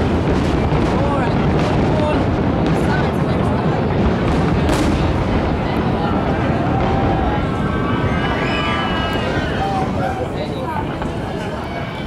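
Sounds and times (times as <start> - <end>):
sharp firework crack: 0.0 - 11.7
fireworks booming: 0.0 - 12.0.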